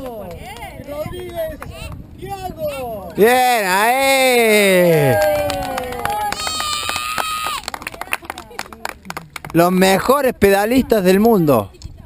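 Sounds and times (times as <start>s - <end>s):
child shouting: 6.1s - 7.6s.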